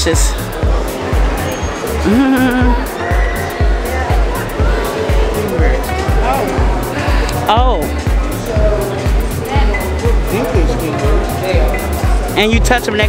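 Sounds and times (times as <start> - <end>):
background music with fast drum beat: 0.0 - 13.0
person exclaiming: 2.1 - 2.8.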